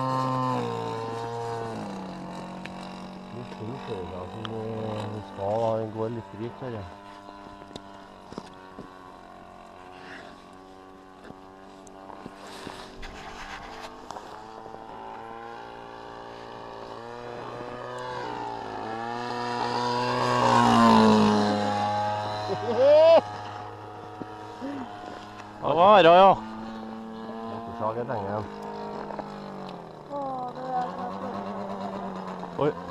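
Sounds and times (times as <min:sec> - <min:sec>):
model plane engine buzzing: 0:00.0 - 0:32.9.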